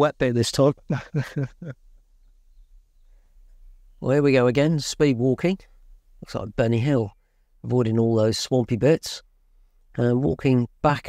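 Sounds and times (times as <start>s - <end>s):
man laughing: 0.7s - 2.0s.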